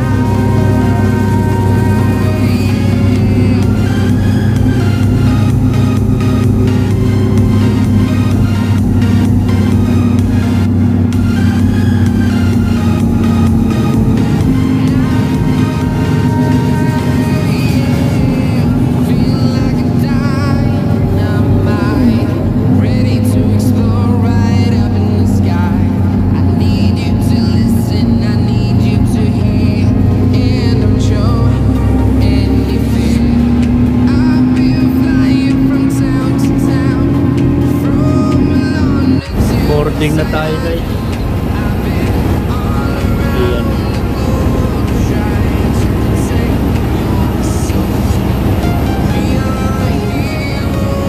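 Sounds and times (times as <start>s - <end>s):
bus engine drone: 0.0s - 51.0s
music playing: 0.0s - 51.0s.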